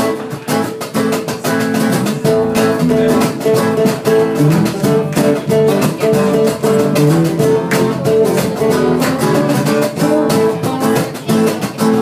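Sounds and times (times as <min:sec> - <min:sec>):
bass: 0:00.0 - 0:12.0
cajon beat: 0:00.0 - 0:12.0
strummed acoustic guitars: 0:00.0 - 0:12.0.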